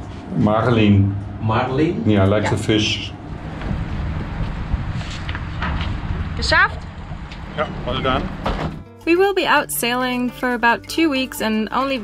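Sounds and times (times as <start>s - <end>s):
low outdoor rumble: 0.0s - 8.8s
faint footsteps: 3.3s - 7.5s.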